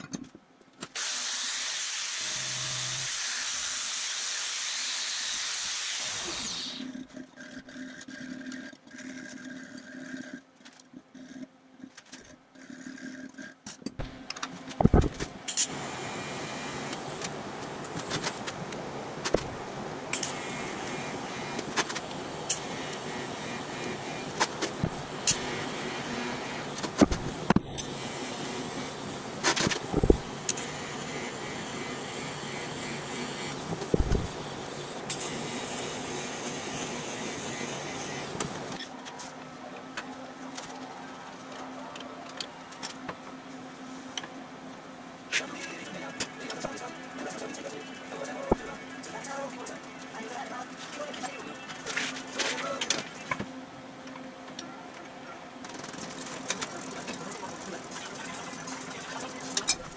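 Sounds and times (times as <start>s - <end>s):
angle grinder on steel: 1.0s - 6.9s, 35.1s - 38.4s
welding arc hissing: 1.0s - 6.9s.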